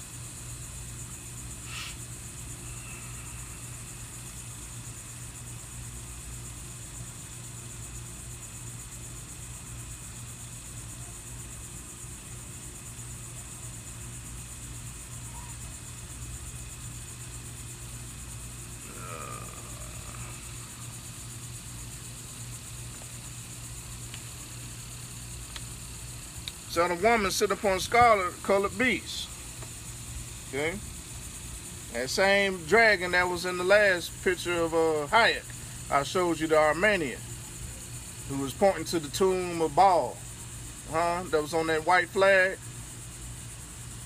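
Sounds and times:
high hiss: 0.0s - 11.0s, 11.6s - 44.0s
low machine hum: 0.0s - 44.0s.

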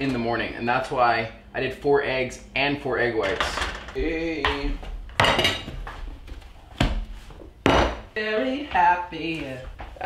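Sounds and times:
dishes knocking on wooden table: 3.2s - 6.0s, 6.8s - 8.1s.

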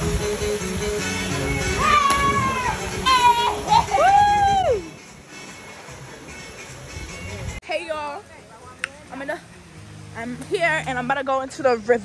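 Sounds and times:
woman screaming: 1.8s - 4.9s.

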